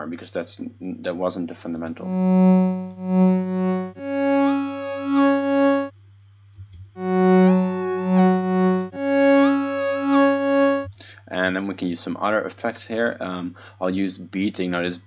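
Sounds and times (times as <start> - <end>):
synth pulsing two-note phrase: 2.0 - 5.9, 7.0 - 10.9.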